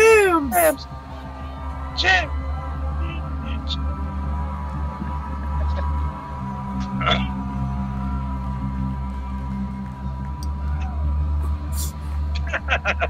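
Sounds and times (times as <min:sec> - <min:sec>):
short voice: 0:00.0 - 0:00.8.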